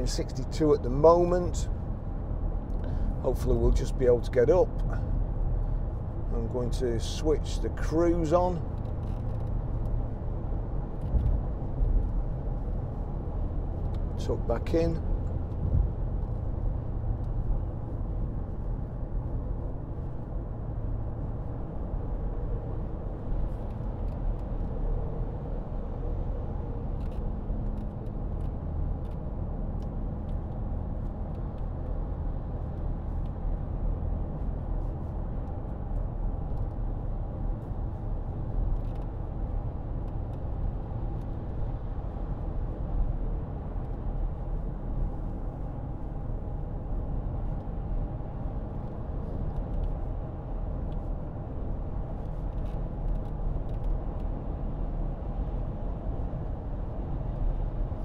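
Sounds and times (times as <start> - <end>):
car engine hum: 0.0 - 58.0
tyre and road noise: 0.0 - 58.0.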